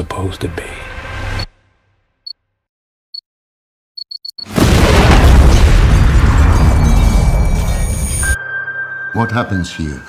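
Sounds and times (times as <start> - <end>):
car explosion: 4.5 - 8.0.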